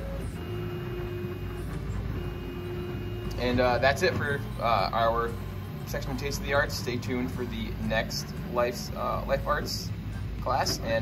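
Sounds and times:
low steady hum: 0:00.0 - 0:11.0
printer motors whining: 0:00.0 - 0:11.0.

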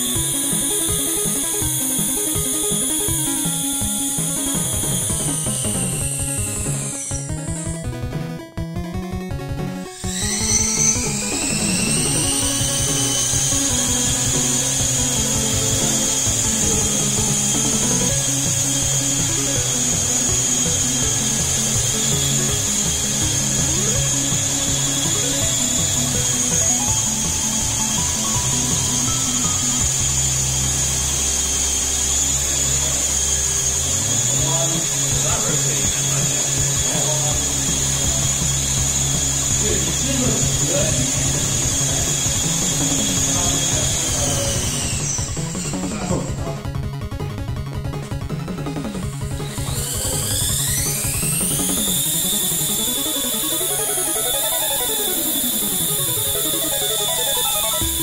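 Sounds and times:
drone motors whining: 0:00.0 - 0:58.0
electronic music: 0:00.0 - 0:58.0.

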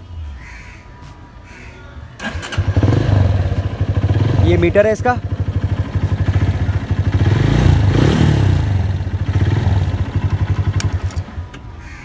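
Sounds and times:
motorcycle engine running: 0:02.2 - 0:11.4.

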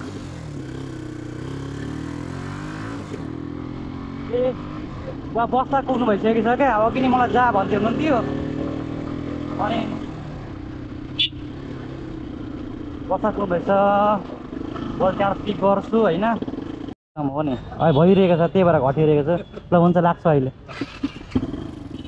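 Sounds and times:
motorcycle engine running: 0:00.0 - 0:05.7, 0:06.5 - 0:17.0, 0:21.0 - 0:22.0.

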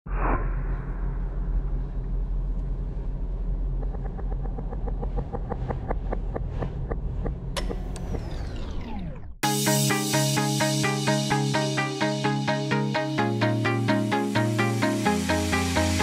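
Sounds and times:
deep rumbling drone: 0:00.1 - 0:09.4.

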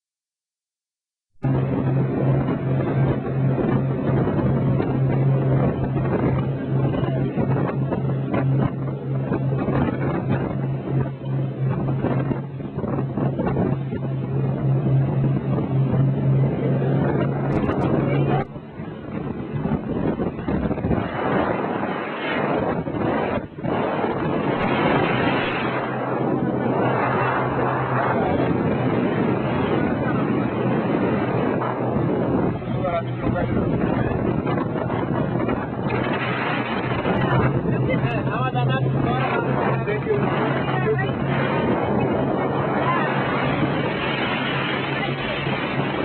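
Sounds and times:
speedboat engine drone: 0:00.7 - 0:46.0
water rushing and spray: 0:01.4 - 0:46.0
wind on microphone: 0:01.4 - 0:46.0.

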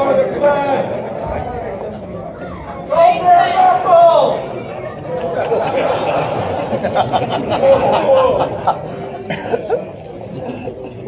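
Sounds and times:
audience talking: 0:00.0 - 0:11.0
cough: 0:09.2 - 0:09.8.

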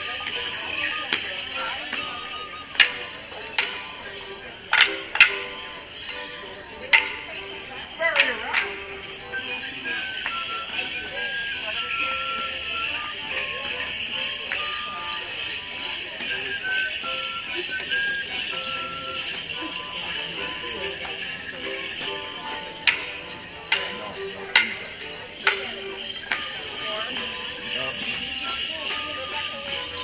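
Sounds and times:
jingling bells: 0:00.0 - 0:30.0
live folk tune: 0:00.0 - 0:30.0
wooden sticks clacking: 0:00.0 - 0:30.0.

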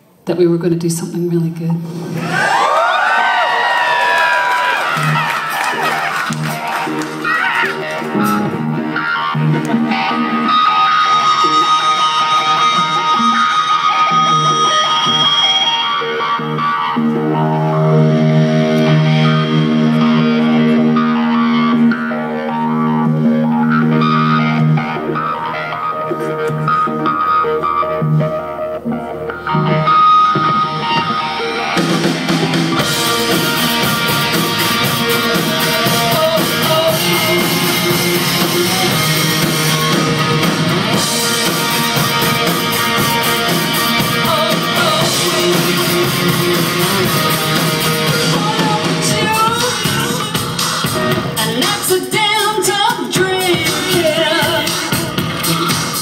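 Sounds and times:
drums: 0:00.0 - 0:56.0
distorted electric guitar: 0:01.6 - 0:56.0
rock band playing: 0:01.8 - 0:56.0.

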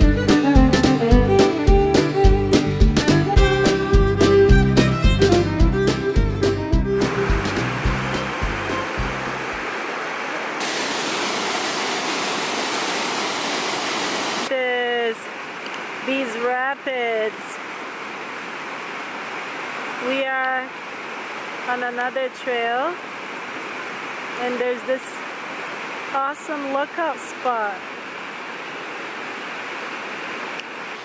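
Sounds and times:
fiddle music: 0:00.0 - 0:09.5
waterfall rushing over rocks: 0:07.0 - 0:31.0.

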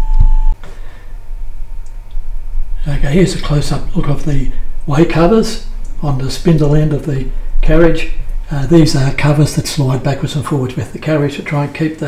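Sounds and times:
faint constant tone: 0:00.0 - 0:12.0
steady hum: 0:00.0 - 0:12.0.

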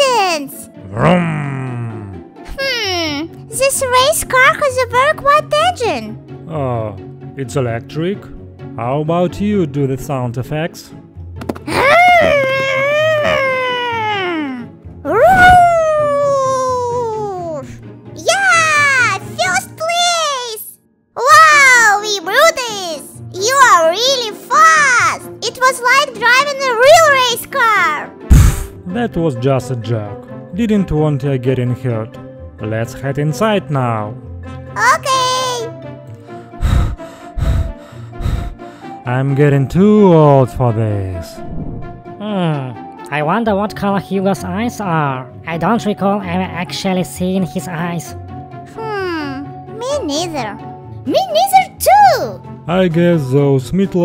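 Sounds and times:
soft background music: 0:00.0 - 0:54.0
person huffing heavy breaths: 0:36.3 - 0:39.0.

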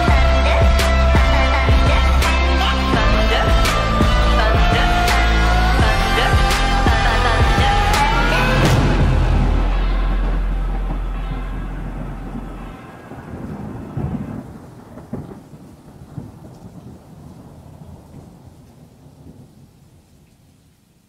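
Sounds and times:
song bass: 0:00.0 - 0:12.8
steady rain: 0:00.0 - 0:21.0
rolling thunder: 0:02.9 - 0:20.6
loud thunder cracks: 0:05.8 - 0:19.7.

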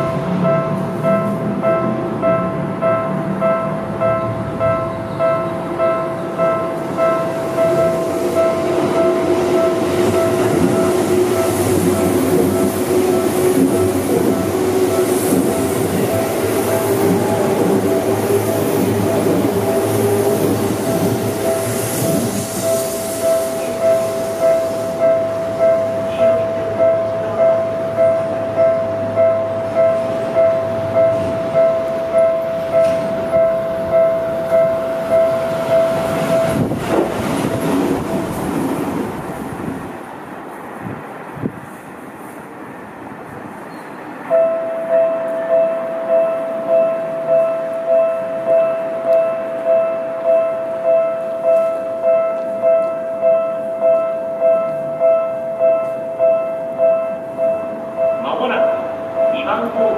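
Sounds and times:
train passing: 0:00.0 - 0:59.9
second level crossing bell: 0:22.4 - 0:36.7, 0:44.3 - 0:59.9.

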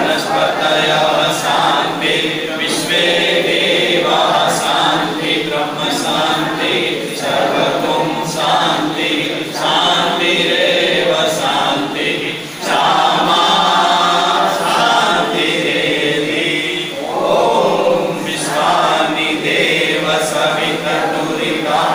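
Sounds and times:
group chanting in unison: 0:00.0 - 0:21.9.

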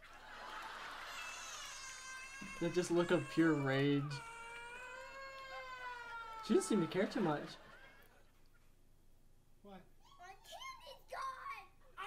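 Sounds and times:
young child wailing: 0:01.1 - 0:07.8.

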